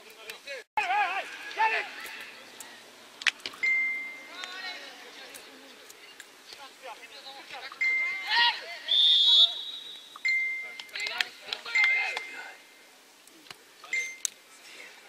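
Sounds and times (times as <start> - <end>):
players and coaches shouting: 0.8 - 2.8, 7.8 - 10.0
short whistle tones: 8.9 - 11.0.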